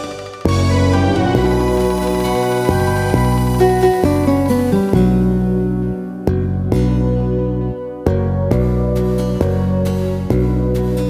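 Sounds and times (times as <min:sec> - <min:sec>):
guitar-led backing track: 0:00.0 - 0:11.0.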